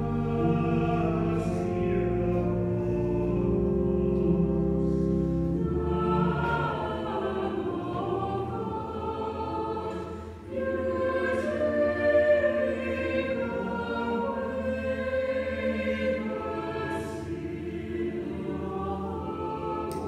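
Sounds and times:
church choir singing in harmony: 0:00.0 - 0:20.0.

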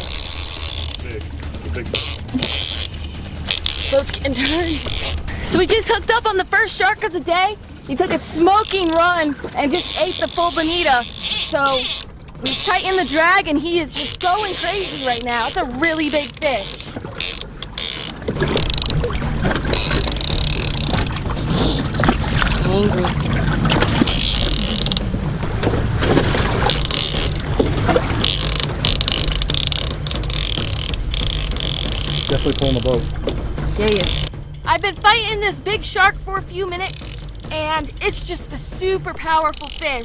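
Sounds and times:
fishing reel clicking and rustling: 0:00.0 - 0:07.0, 0:08.2 - 0:22.8, 0:23.8 - 0:25.1, 0:25.8 - 0:35.4, 0:36.6 - 0:40.0
boat engine running: 0:00.0 - 0:40.0
steady low hum: 0:00.0 - 0:40.0
water noise: 0:00.0 - 0:40.0.

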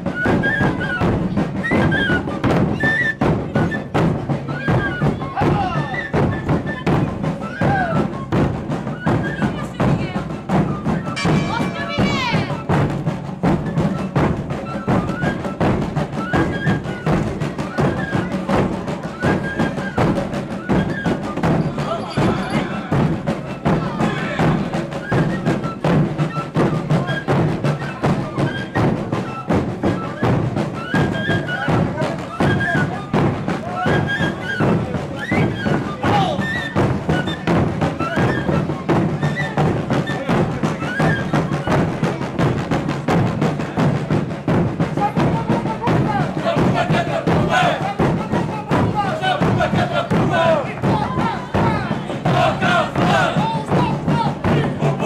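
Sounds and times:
crowd voices: 0:00.0 - 0:55.0.

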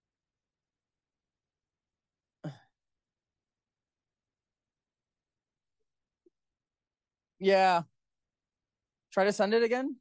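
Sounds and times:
person clearing throat: 0:02.4 - 0:02.7.

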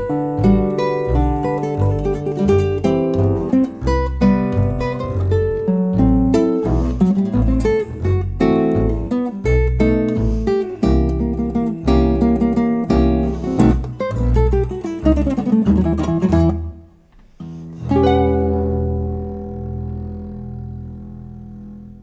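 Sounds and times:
classical guitar playing: 0:00.0 - 0:22.0
double bass notes: 0:00.0 - 0:22.0.

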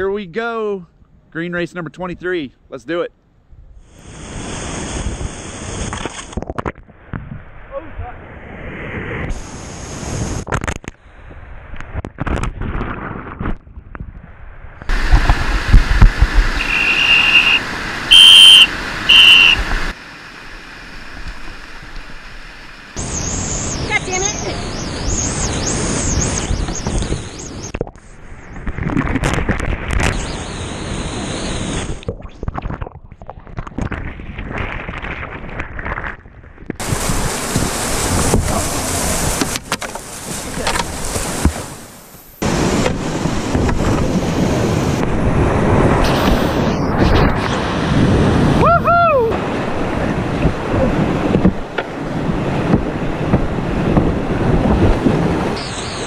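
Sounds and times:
shrill high notes: 0:16.6 - 0:19.6
person shouting: 0:48.6 - 0:49.4.

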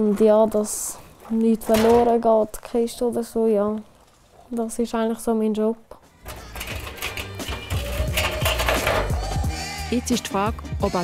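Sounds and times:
background music with bass line: 0:06.1 - 0:11.0.

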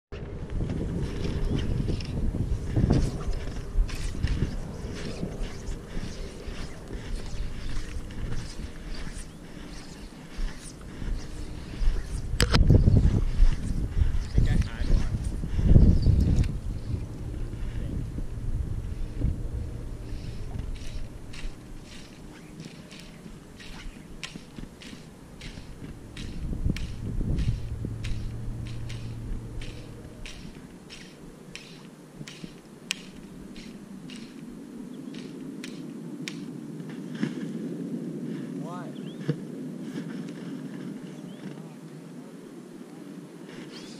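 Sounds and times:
wind buffeting microphone: 0:00.1 - 0:41.8
quick light clicks: 0:20.2 - 0:34.4.

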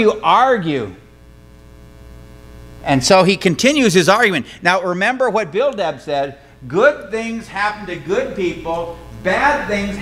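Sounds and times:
man speaking: 0:00.0 - 0:01.0, 0:02.8 - 0:10.0
electrical mains hum: 0:00.0 - 0:10.0.

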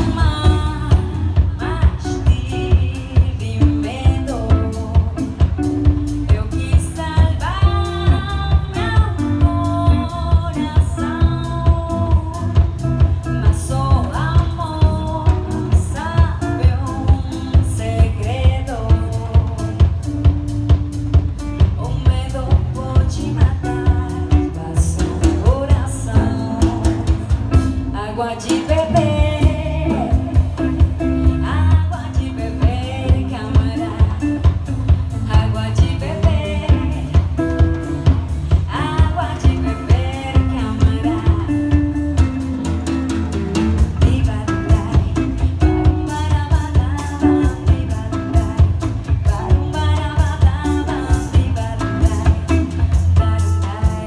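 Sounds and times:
woman singing into microphone: 0:00.0 - 0:20.5, 0:21.6 - 0:42.6, 0:43.8 - 0:54.0
bass guitar: 0:00.0 - 0:54.0
drum kit steady beat: 0:00.0 - 0:54.0
electric guitar: 0:00.0 - 0:54.0.

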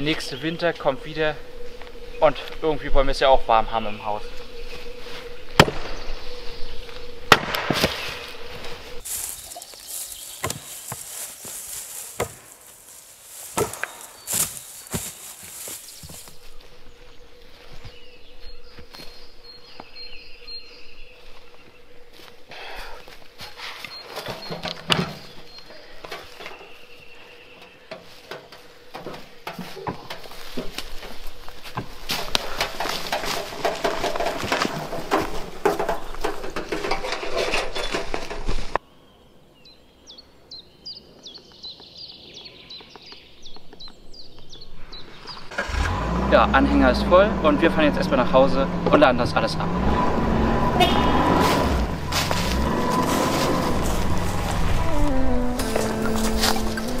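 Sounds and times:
birds chirping: 0:00.0 - 0:45.8
wheelbarrow rattling over leaves: 0:09.0 - 0:16.4, 0:28.0 - 0:38.8, 0:51.3 - 0:57.0
wood knocking and clattering: 0:31.8 - 0:38.6.

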